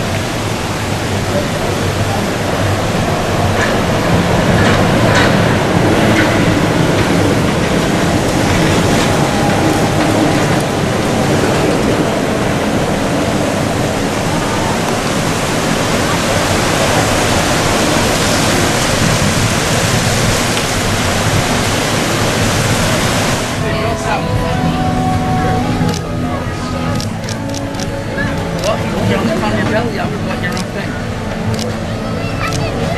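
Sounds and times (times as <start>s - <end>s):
monorail passing overhead: 0.0s - 32.9s.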